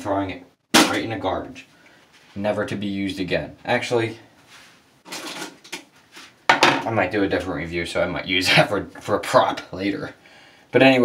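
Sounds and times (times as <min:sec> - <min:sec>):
plastic container rustling clatter: 0:05.0 - 0:06.3.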